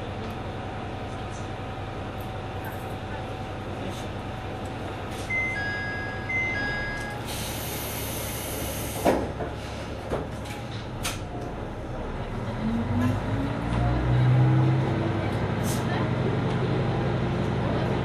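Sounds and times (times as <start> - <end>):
diesel engine idling: 0.0 - 10.0
two-tone door chime: 5.3 - 7.2.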